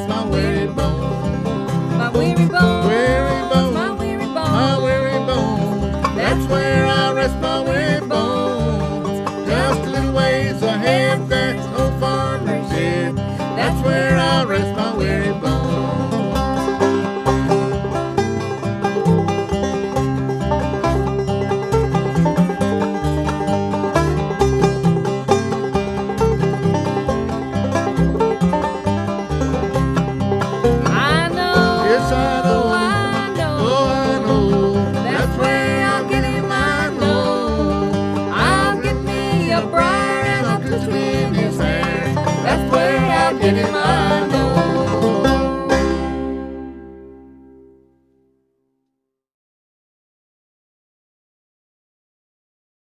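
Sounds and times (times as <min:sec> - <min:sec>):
fast banjo picking: 0:00.0 - 0:47.8
sliding notes: 0:00.0 - 0:47.9
acoustic guitar picking: 0:00.0 - 0:48.0
steady bass line: 0:00.0 - 0:48.0.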